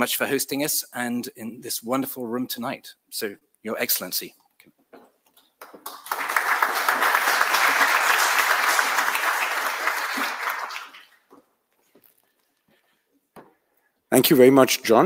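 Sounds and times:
audience applauding: 5.6 - 11.3.

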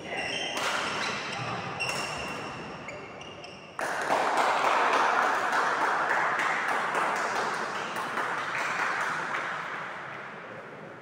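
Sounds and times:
spectators applauding in echoing hall: 3.8 - 10.5.

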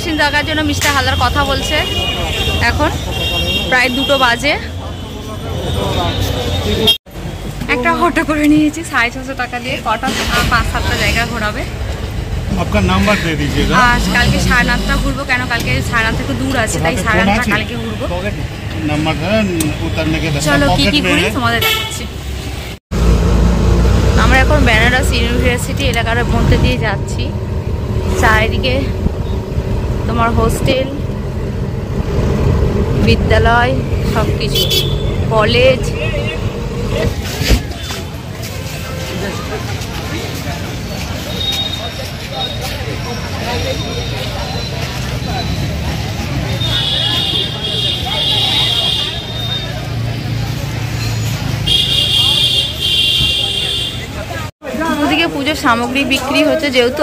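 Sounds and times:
crowd chatter: 0.0 - 22.1, 24.3 - 57.0
vehicle rumble and road noise: 0.0 - 57.0.

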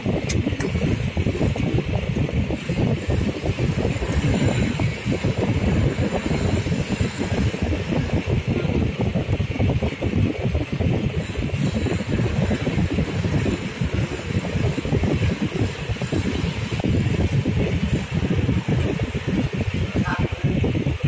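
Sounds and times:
low rumbling noise: 0.0 - 21.0.

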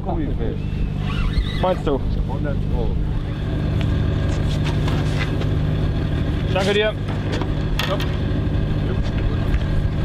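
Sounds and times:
boat engine humming: 0.0 - 10.0.

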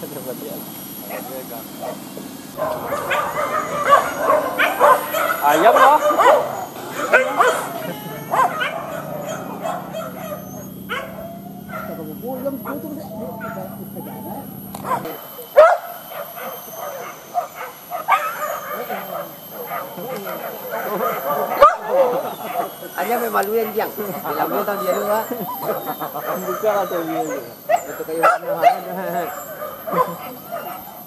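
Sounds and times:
dogs barking: 0.0 - 31.0.

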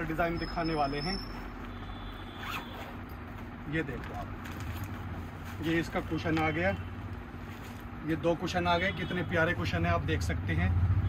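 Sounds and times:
plastic bag zipper zip: 2.4 - 3.0.

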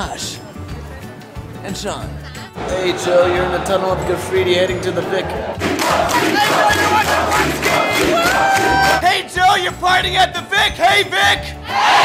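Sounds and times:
crowd shouting and singing: 2.6 - 12.0.

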